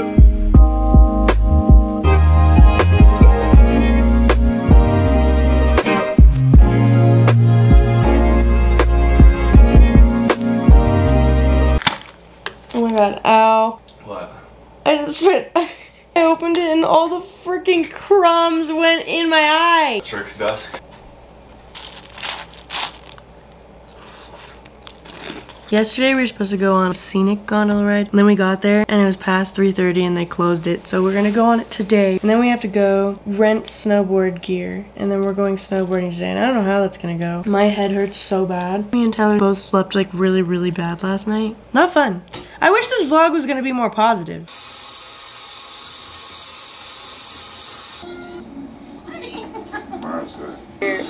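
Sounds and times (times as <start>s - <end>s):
cereal crunching: 21.6s - 25.7s
shower water spraying: 44.5s - 48.0s.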